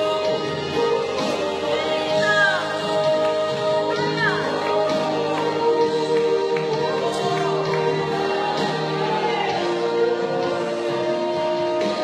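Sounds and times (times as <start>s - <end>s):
gospel singing: 0.0s - 12.0s.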